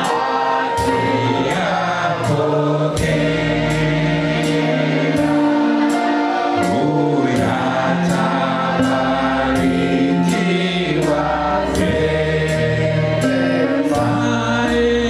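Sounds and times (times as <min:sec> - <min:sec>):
choir singing gospel: 0:00.0 - 0:15.0
sustained accompaniment: 0:00.0 - 0:15.0.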